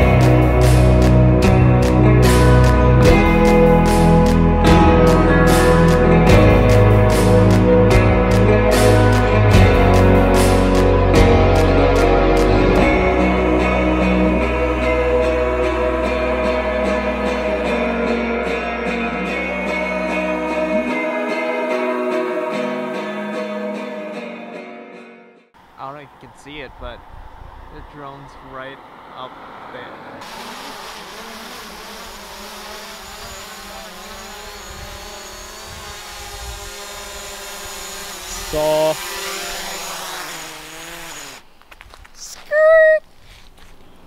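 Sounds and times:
guitar background music: 0.0s - 25.5s
drone propellers whirring: 26.5s - 41.5s.

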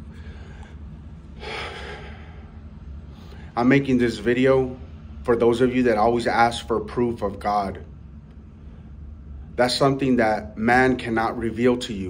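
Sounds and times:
man breathing: 0.0s - 3.6s
steady low hum: 0.0s - 12.0s.

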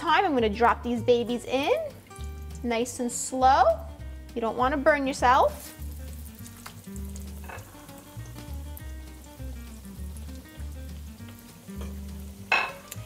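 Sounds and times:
cutlet sizzling in oil: 1.0s - 13.0s.

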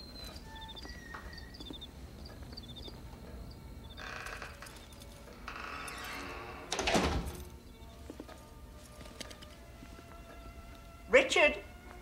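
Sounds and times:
crickets chirping: 0.0s - 8.6s
wooden door thudding shut: 6.5s - 7.5s.

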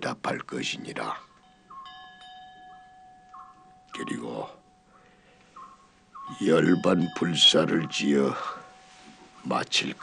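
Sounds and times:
small metal bell ringing: 1.2s - 10.0s.

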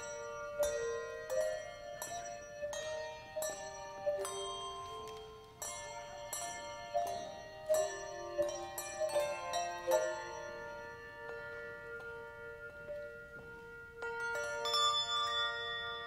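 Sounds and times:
handbells ringing chords: 0.0s - 16.0s.

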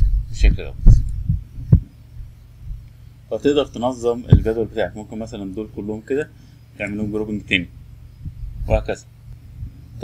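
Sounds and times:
soft low thumps: 0.0s - 3.2s, 4.1s - 4.8s, 7.9s - 10.0s
low hum: 0.0s - 10.0s.

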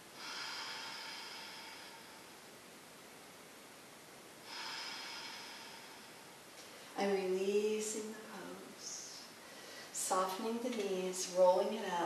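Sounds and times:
woman exhaling: 0.1s - 2.3s, 4.4s - 6.9s.

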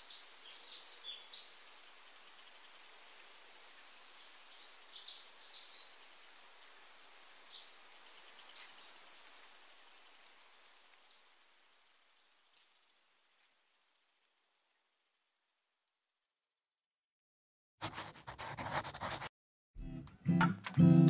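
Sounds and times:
small birds chirping: 0.0s - 11.4s
soft outdoor hiss: 0.0s - 16.0s.

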